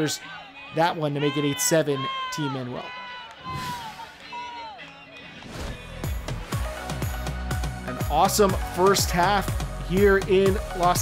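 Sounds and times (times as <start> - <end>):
players whooping and shouting: 0.0 - 5.7
electronic dance music: 3.7 - 11.0.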